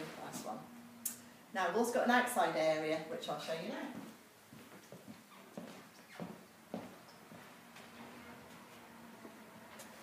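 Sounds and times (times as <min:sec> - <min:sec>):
footsteps on floor: 0:04.0 - 0:10.0.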